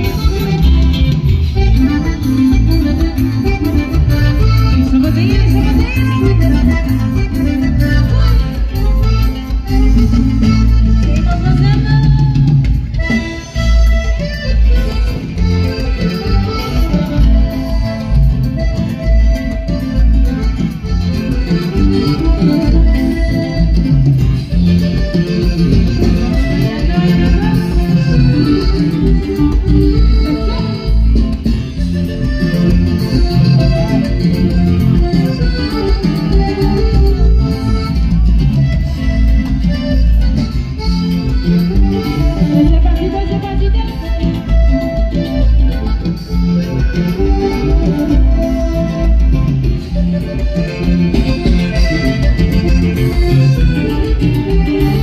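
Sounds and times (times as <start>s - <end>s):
accordion: 0.0s - 55.0s
live band music through pa: 0.0s - 55.0s.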